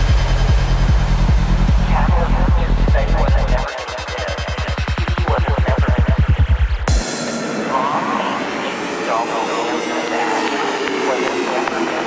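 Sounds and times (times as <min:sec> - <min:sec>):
high synth sweep: 0:00.0 - 0:12.0
processed voice sample: 0:01.8 - 0:12.0
hissing synth drone: 0:06.9 - 0:12.0.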